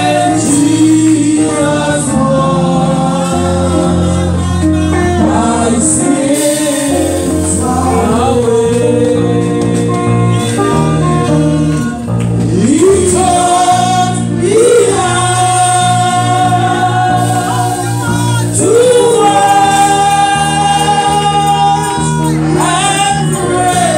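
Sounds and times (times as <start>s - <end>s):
choir singing gospel: 0.0s - 23.9s.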